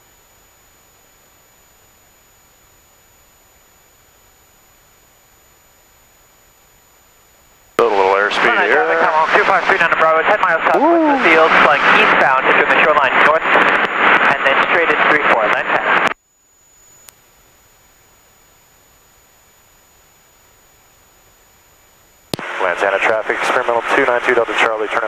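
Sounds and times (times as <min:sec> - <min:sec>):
voice over aircraft radio: 0:07.8 - 0:16.1, 0:22.5 - 0:25.0.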